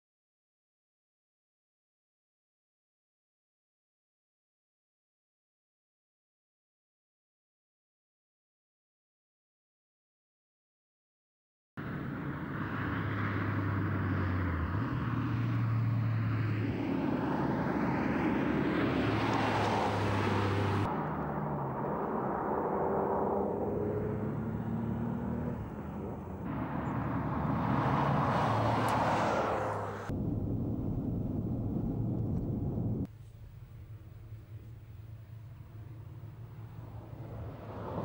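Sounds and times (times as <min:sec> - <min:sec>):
sports car passing by: 0:11.8 - 0:30.1, 0:34.6 - 0:38.0.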